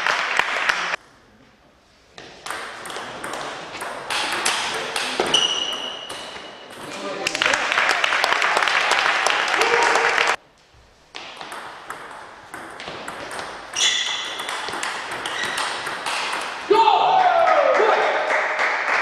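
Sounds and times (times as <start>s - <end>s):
people shouting: 16.7s - 18.2s.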